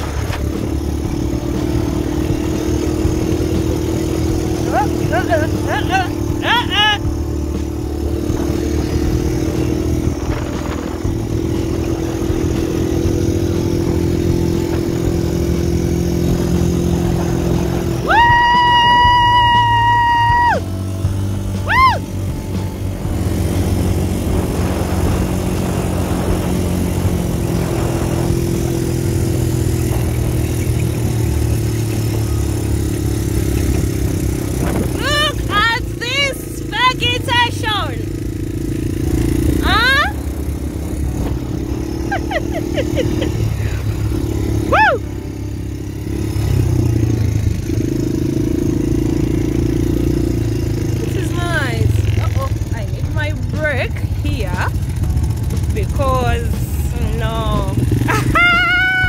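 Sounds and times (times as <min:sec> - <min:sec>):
wind and sand noise: 0:00.0 - 0:37.1, 0:38.0 - 0:59.0
quad bike engine running: 0:00.0 - 0:59.0
high-pitched cries: 0:21.6 - 0:22.1, 0:58.1 - 0:59.0.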